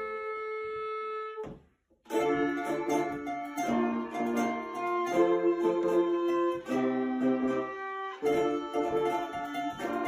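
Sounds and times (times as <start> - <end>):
clarinet long note: 0.0 - 1.6.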